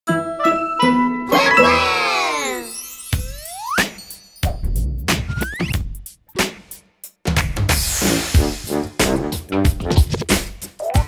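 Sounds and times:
cartoon logo jingle: 0.8 - 3.8.

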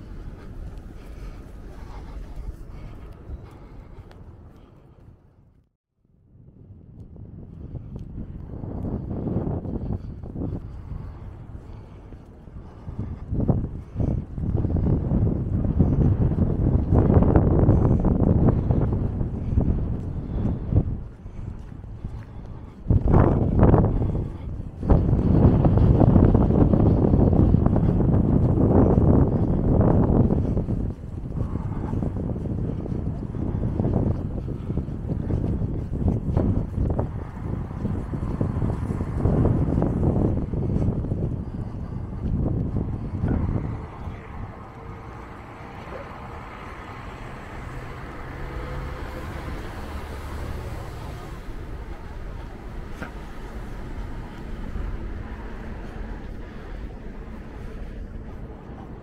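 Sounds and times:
city traffic rumble: 0.0 - 59.0
wind buffeting microphone: 0.0 - 59.0.

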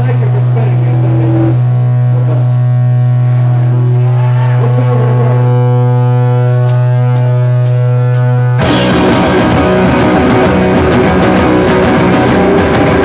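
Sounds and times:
loud low amplifier drone: 0.0 - 13.0
wavering pitched tones: 0.8 - 8.8.

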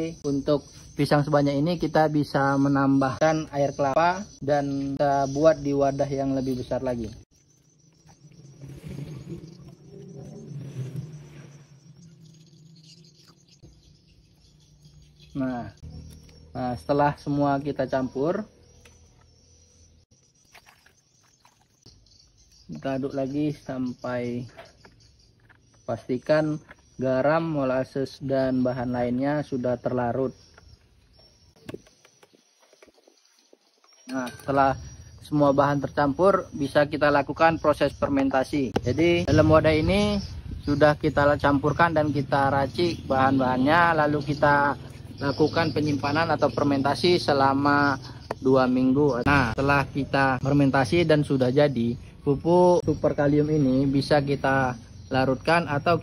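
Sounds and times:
hand squelching bananas in liquid: 20.4 - 21.8.

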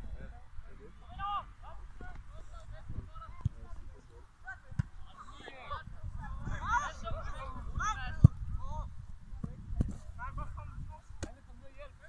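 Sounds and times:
wind rumble on microphone: 1.9 - 4.8, 5.7 - 11.2
distant shouts of young players: 4.4 - 8.9.

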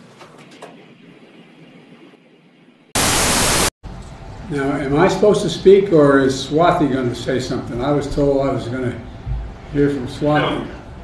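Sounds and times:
white-noise static burst: 0.8 - 3.8.

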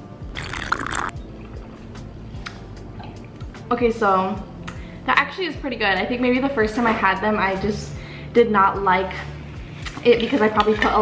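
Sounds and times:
background music with steady beat: 0.0 - 11.0
person slurping a drink: 0.3 - 1.1.

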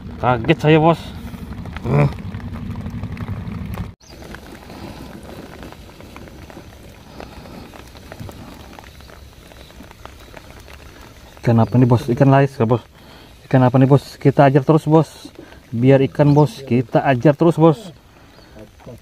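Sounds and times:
rain pattering: 0.0 - 19.0.

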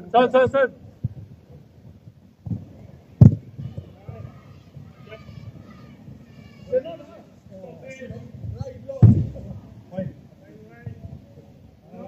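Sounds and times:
football impact thud: 2.5 - 3.6, 9.0 - 9.6
players shouting: 3.5 - 9.6.

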